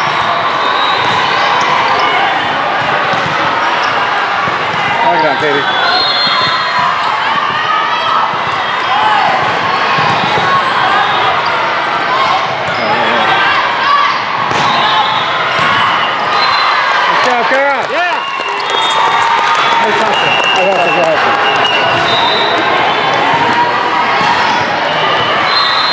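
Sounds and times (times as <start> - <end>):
chatter and shouts: 0.0 - 25.9
volleyball slaps: 2.8 - 3.6, 14.4 - 14.8.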